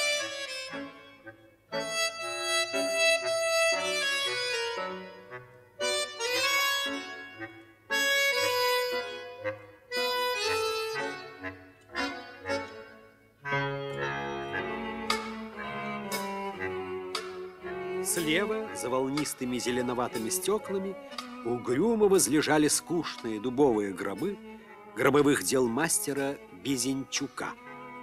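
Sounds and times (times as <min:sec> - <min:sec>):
accordion film score music: 0:00.0 - 0:28.0.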